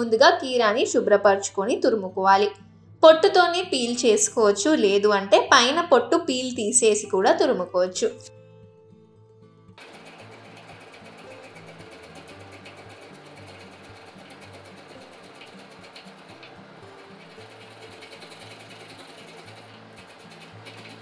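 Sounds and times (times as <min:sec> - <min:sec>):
soft music with bass line: 0:07.1 - 0:09.8
cucumber rasping on metal grater: 0:09.8 - 0:21.0.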